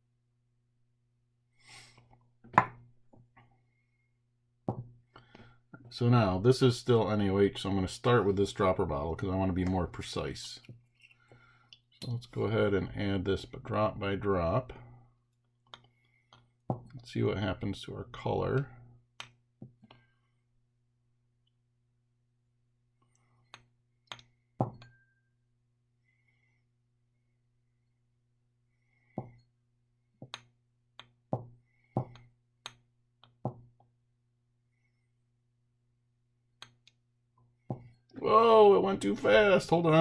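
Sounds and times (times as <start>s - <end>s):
light taps of bottle and beaker: 23.5s - 25.0s
glass clink: 24.6s - 25.3s.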